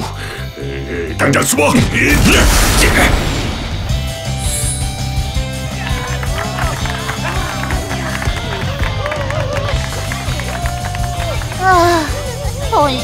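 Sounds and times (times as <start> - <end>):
background music: 0.0 - 13.0
voices cheering and exclaiming: 5.6 - 13.0
hand clapping: 5.7 - 12.7.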